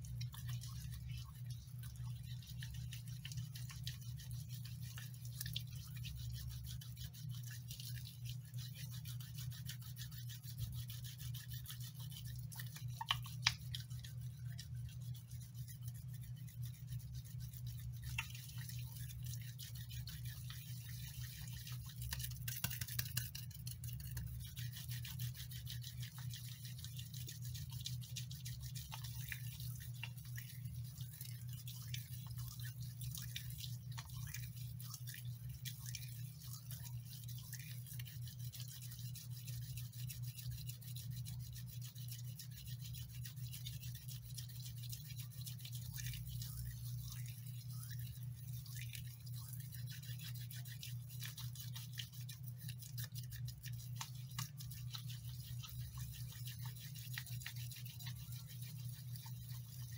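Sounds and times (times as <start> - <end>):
soapy hands rubbing: 0.0 - 59.9
steady low hum: 0.0 - 59.9.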